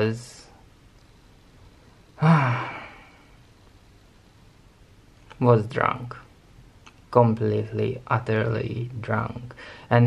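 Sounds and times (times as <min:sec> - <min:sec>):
man sighing: 0:02.2 - 0:03.4.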